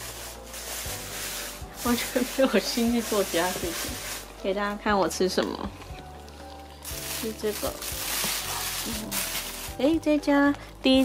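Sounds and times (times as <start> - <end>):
rubbing and rustling: 0.0 - 4.4, 6.8 - 9.9.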